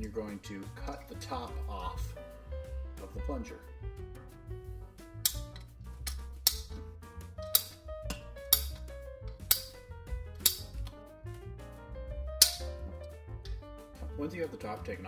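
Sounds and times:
background music: 0.0s - 15.0s
pipe cutter clicking: 5.2s - 11.0s, 12.4s - 12.8s.

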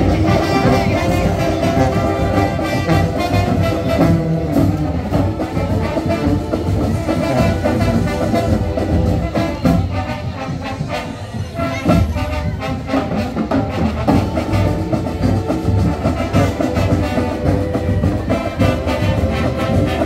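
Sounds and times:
marching band brass: 0.0s - 20.0s
steady drum beat: 0.0s - 20.0s.

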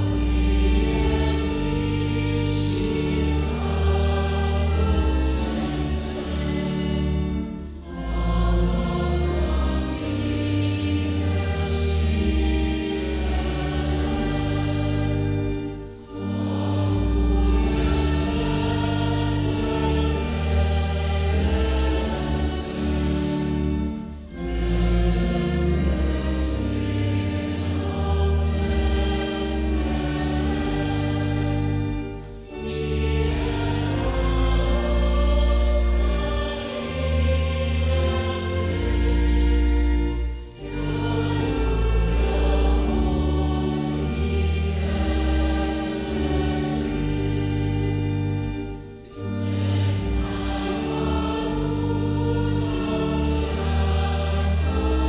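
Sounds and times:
congregation singing a hymn: 0.0s - 55.0s
organ accompaniment: 0.0s - 55.0s.

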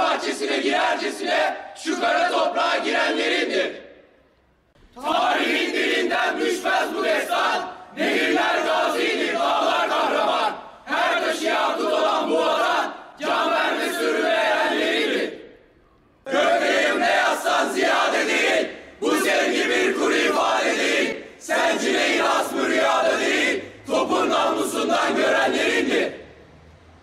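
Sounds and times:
boys reciting in unison: 0.0s - 3.8s, 5.0s - 15.4s, 16.3s - 26.2s.

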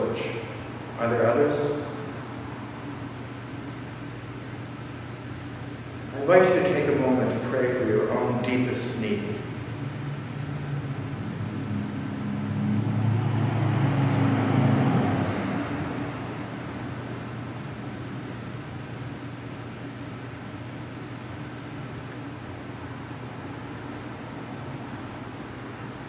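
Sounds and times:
low hum and hiss: 0.0s - 26.0s.

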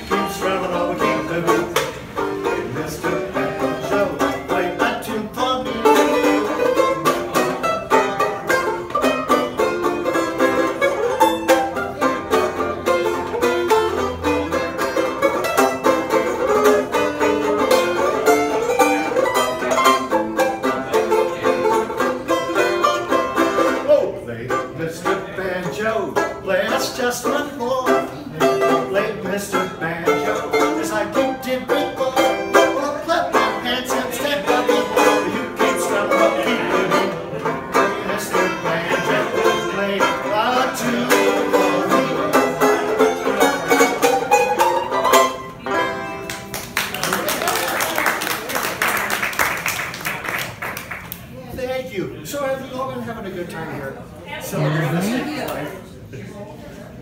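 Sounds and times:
banjo picking: 0.0s - 46.5s.

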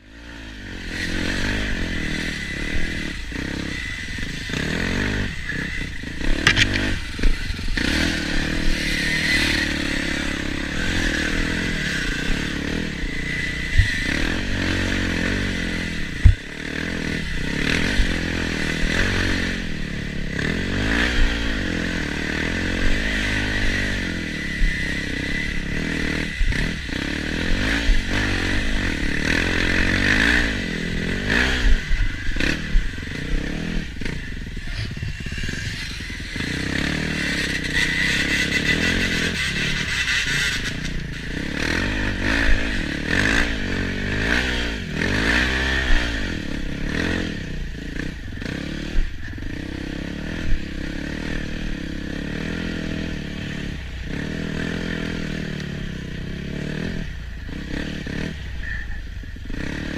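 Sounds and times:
dirt bike engine revving: 0.0s - 59.9s
knocks and clatter over bumps: 6.3s - 7.4s.

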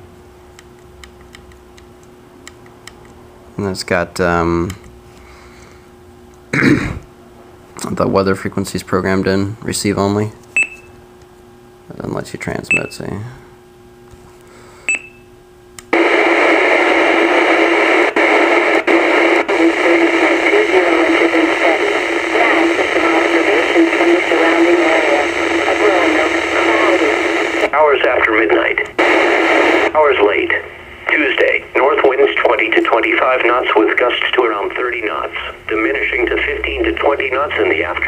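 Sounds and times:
radio static: 15.9s - 38.0s
tinny radio voice: 16.0s - 38.0s.

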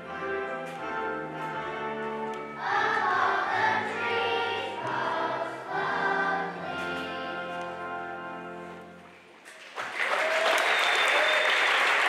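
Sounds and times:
instrumental accompaniment: 0.0s - 9.4s
children's choir singing: 0.8s - 8.6s.

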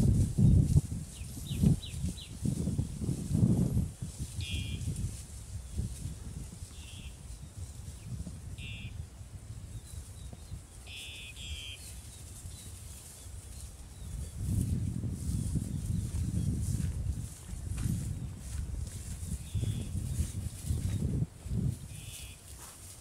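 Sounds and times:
low thumps and rustling in grass: 0.0s - 8.6s, 11.9s - 23.0s
short high bird chirps: 4.4s - 4.9s, 8.6s - 9.0s, 10.9s - 12.0s, 21.9s - 22.4s.

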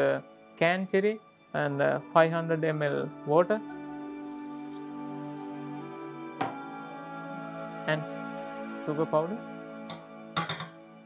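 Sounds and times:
background music with held chords: 0.0s - 11.0s
water pouring into a saucepan: 3.4s - 5.9s.

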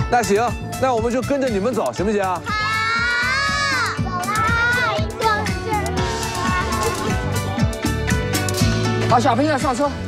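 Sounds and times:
background music with steady beat: 0.0s - 10.0s
children calling out together: 2.4s - 7.2s.

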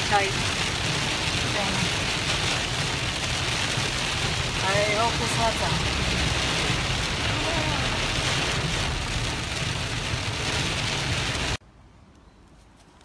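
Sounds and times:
heavy rain on car: 0.0s - 11.6s
road and engine rumble: 0.0s - 13.0s.

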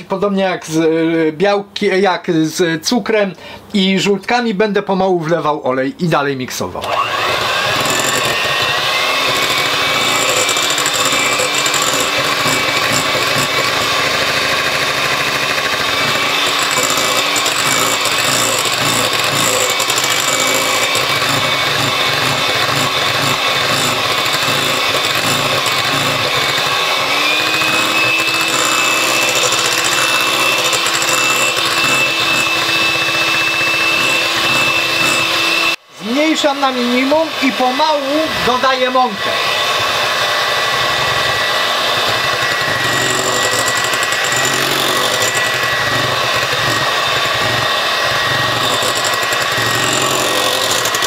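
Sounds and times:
electric mixer whisking batter: 6.8s - 35.8s, 36.6s - 51.0s.

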